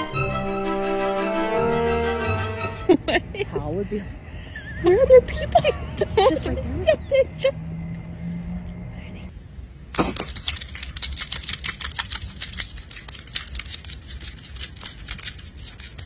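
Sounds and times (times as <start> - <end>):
hedgehog chewing crunchy food: 9.9 - 16.0.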